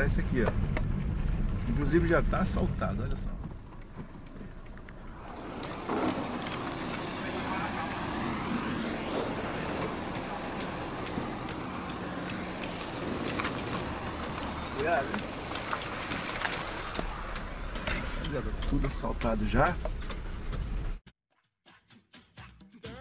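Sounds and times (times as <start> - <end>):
car tyres rushing on wet road: 5.1 - 19.7
rain ticking: 9.0 - 19.8.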